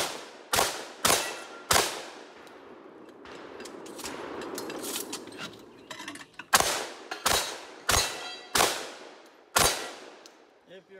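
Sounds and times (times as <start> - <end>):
pistol shots with echo: 0.0 - 4.4, 6.5 - 10.2.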